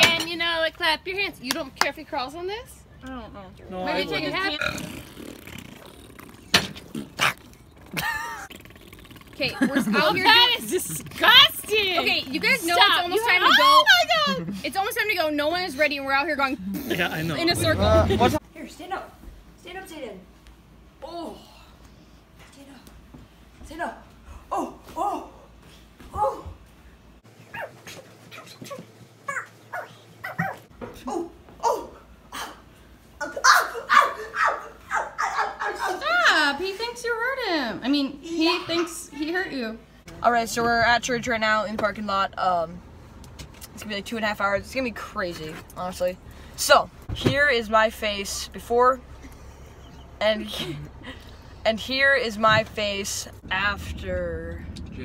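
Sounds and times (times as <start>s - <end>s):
dog barking and yipping: 27.5s - 28.7s, 29.3s - 31.3s, 33.3s - 36.0s.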